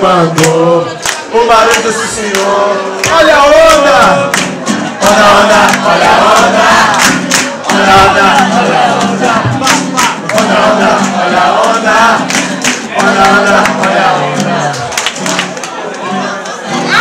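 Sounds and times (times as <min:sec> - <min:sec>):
crowd singing and shouting: 0:00.0 - 0:17.0
loud live party music: 0:00.0 - 0:17.0.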